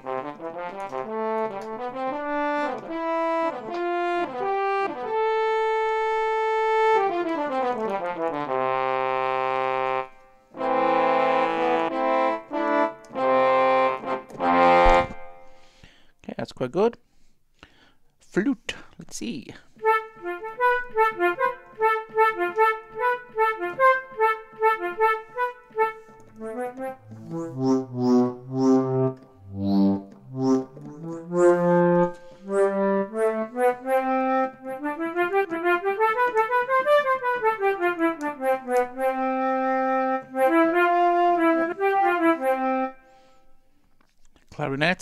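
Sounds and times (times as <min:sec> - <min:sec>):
sampled flute notes: 0:19.8 - 0:43.6.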